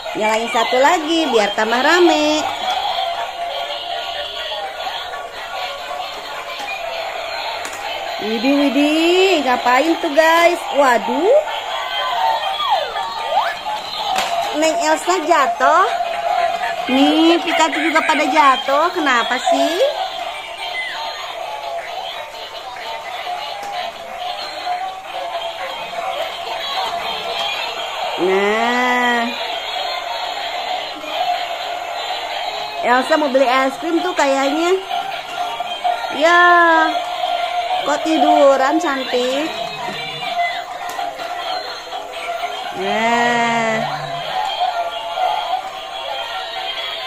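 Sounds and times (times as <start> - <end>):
toy electronic music: 0.0 - 47.0
thin synthetic singing voice: 38.9 - 47.0.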